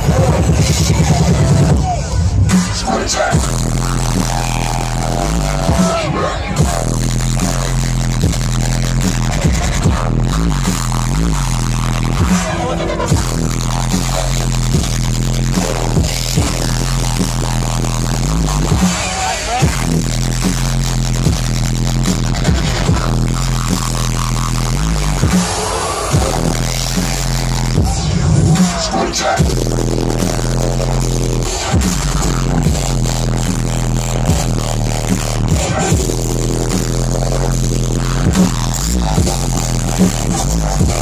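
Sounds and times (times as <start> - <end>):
dubstep music over sound system: 0.0 - 41.0
heavy bass line: 0.0 - 41.0.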